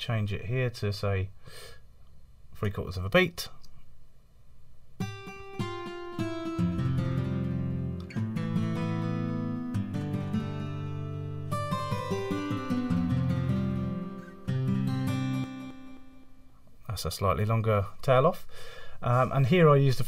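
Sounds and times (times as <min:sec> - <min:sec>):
plucked guitar with delay echoes: 0:05.0 - 0:16.5.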